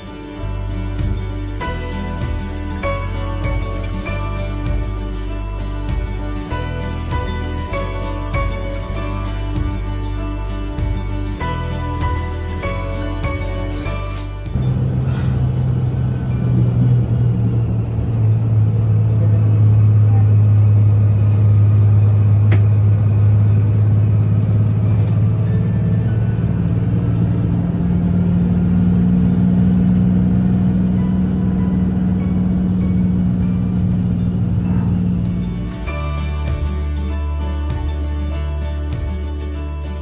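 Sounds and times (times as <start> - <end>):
bus engine drone: 0.0 - 40.0
road noise: 0.0 - 40.0.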